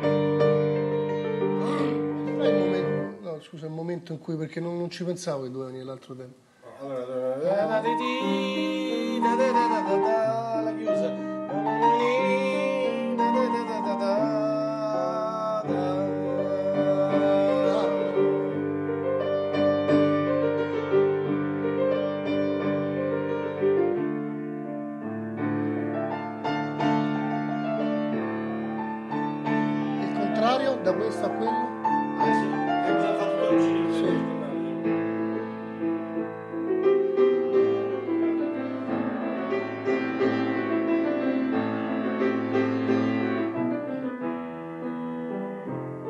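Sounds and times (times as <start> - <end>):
grand piano chords: 0.0 - 5.5, 6.8 - 46.0.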